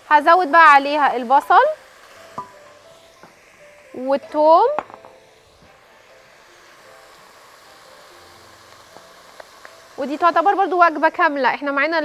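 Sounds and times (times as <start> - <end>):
food sizzling in a pot: 0.0 - 12.0.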